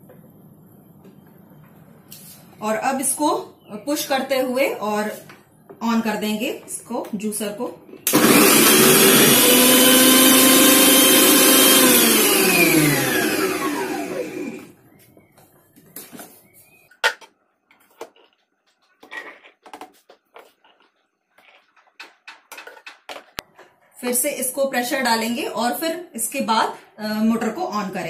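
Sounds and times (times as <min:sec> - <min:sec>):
food processor motor whining: 0:08.1 - 0:14.8
motor winding down: 0:08.1 - 0:14.8.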